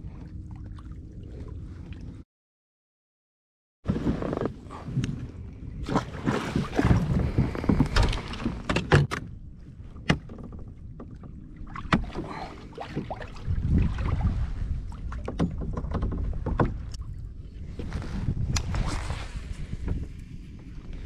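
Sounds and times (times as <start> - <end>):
water lapping along kayak hull: 0.0 - 2.2, 4.0 - 21.0
wind buffeting microphone: 4.9 - 8.7, 13.0 - 21.0
gear knocking against hull: 15.2 - 17.0.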